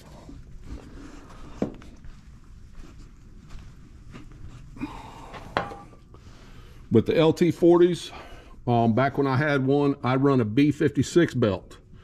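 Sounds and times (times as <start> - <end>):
soft footsteps: 0.0 - 6.1.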